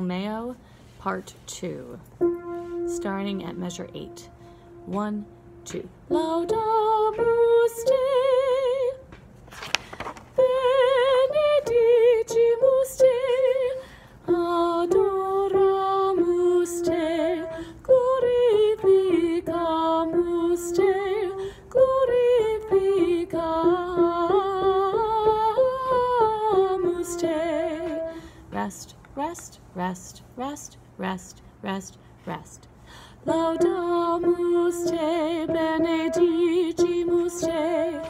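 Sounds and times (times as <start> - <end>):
woman singing unaccompanied: 1.6 - 9.1, 10.3 - 38.0.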